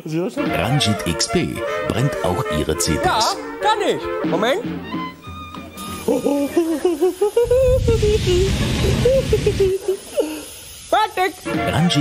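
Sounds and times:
gas torch hissing: 5.6s - 12.0s
man humming: 5.8s - 10.3s.

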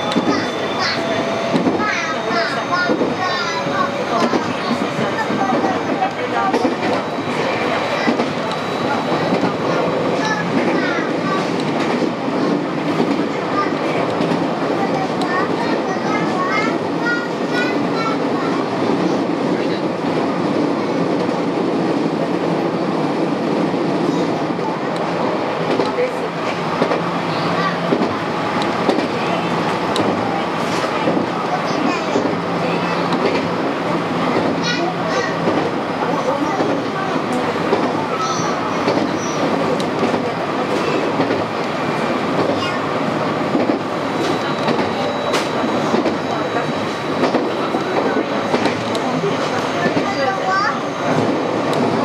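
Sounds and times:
train wheels rumbling on rail: 0.0s - 52.0s.

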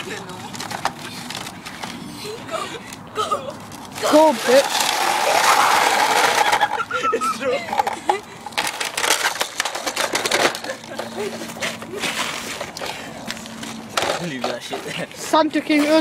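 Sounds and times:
people yelling and laughing: 5.1s - 8.2s.

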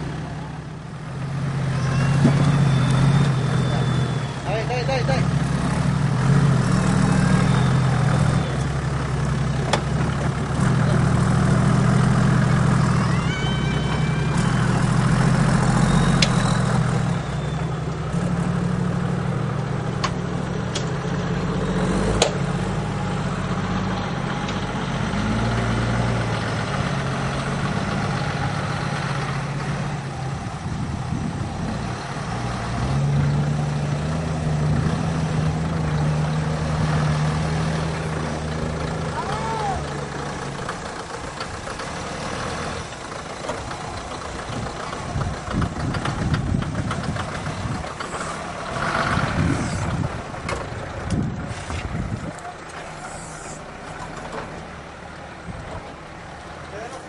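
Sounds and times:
engine running under load: 0.0s - 57.0s.

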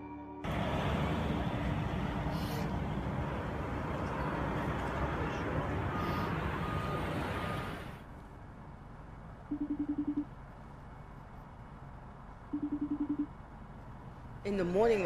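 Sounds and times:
city street traffic: 0.0s - 15.0s.

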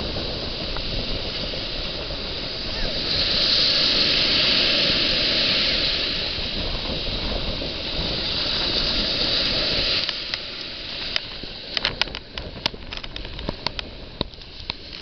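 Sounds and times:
surf on sandy beach: 0.0s - 15.0s.

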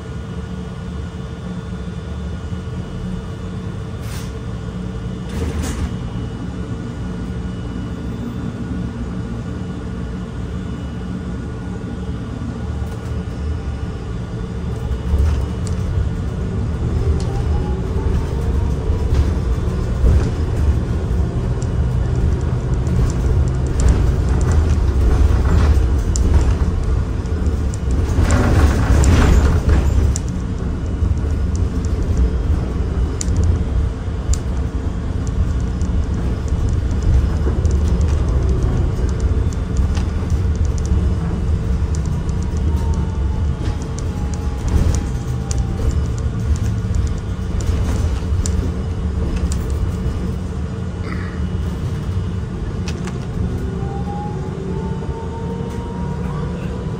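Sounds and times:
bus engine and road rumble: 0.0s - 56.9s
rushing noise: 13.6s - 56.2s.

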